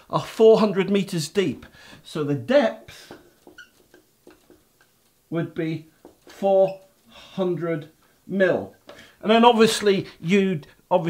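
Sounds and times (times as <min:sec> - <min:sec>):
marker writing on whiteboard: 0:03.1 - 0:04.7
marker tip squeak: 0:03.5 - 0:04.0.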